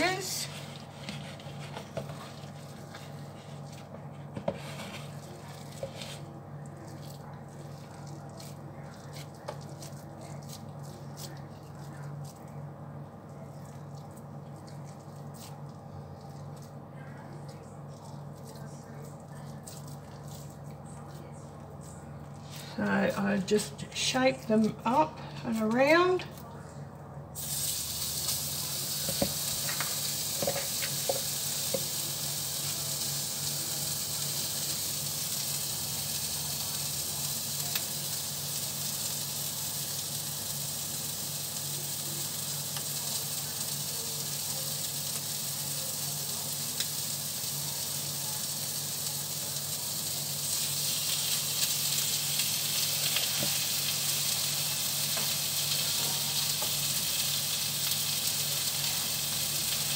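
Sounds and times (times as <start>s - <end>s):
burger patties sizzling in a pan: 27.4s - 59.9s.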